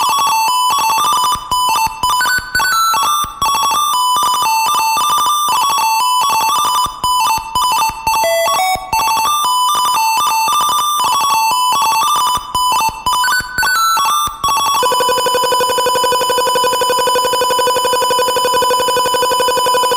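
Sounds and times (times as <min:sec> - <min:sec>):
reverberant square-wave beeps: 0:00.0 - 0:19.9
long held beep: 0:14.8 - 0:19.9.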